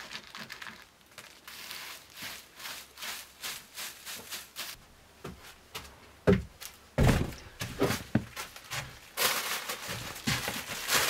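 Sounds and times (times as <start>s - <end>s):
foil bag crinkling: 0.0s - 4.8s, 8.0s - 11.0s
footsteps on wooden boards: 5.2s - 9.0s, 9.8s - 11.0s
broom set down on wooden floor: 7.0s - 8.9s.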